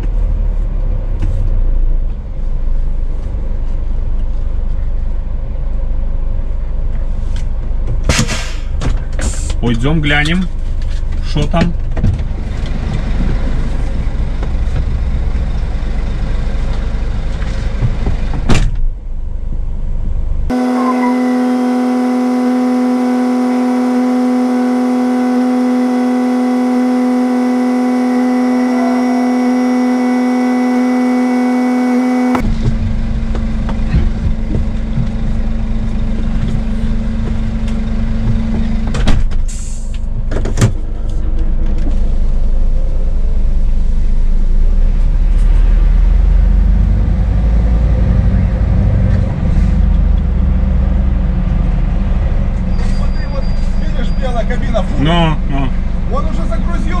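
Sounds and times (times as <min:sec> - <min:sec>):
truck engine idling: 0:12.3 - 0:18.4, 0:32.4 - 0:44.8.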